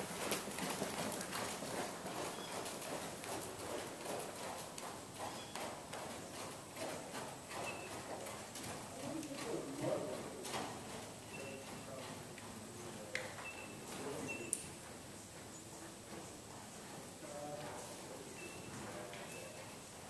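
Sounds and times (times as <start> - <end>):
horse hoofbeats on arena footing: 0.0 - 20.0.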